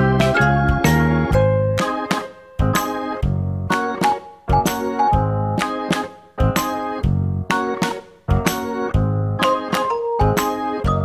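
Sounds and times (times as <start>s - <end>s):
bass line: 0.0s - 1.9s, 2.6s - 3.8s, 4.5s - 5.7s, 6.4s - 7.5s, 8.3s - 9.4s, 10.2s - 11.0s.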